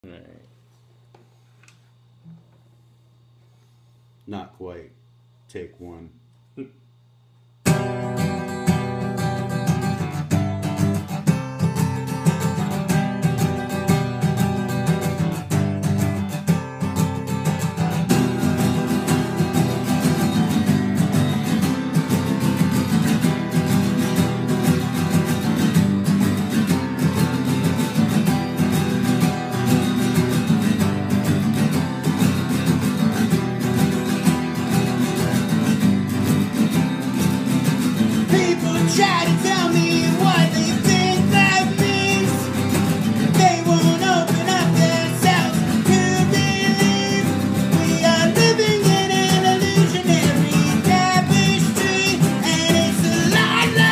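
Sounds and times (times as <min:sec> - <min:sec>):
acoustic guitars playing: 0:07.6 - 0:53.9.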